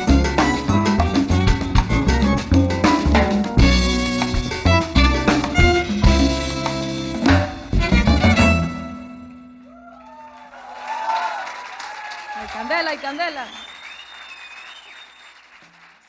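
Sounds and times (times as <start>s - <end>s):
live salsa band playing: 0.0s - 9.6s.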